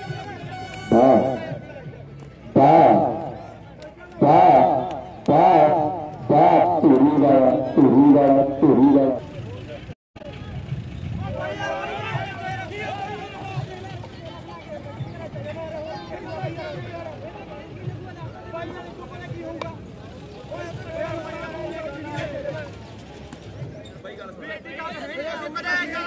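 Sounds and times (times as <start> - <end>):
men talking: 0.0 - 10.6, 11.2 - 26.0.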